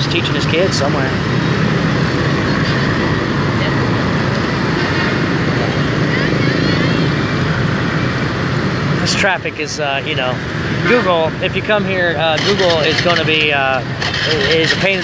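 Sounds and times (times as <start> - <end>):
motorbike and scooter traffic: 0.0 - 15.0.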